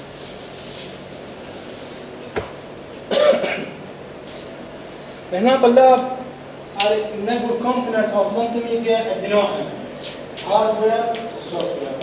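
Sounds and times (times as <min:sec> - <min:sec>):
person clearing throat: 0:03.1 - 0:03.9.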